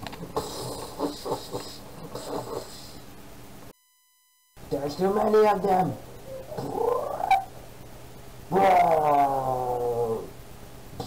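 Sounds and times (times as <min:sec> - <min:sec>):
steady low hum: 0:00.0 - 0:11.0
man making wavering vocal sounds: 0:05.1 - 0:07.5, 0:08.5 - 0:10.4.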